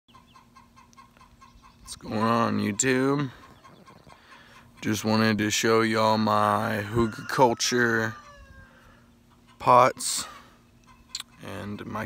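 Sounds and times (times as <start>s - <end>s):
chickens clucking: 0.1s - 12.0s.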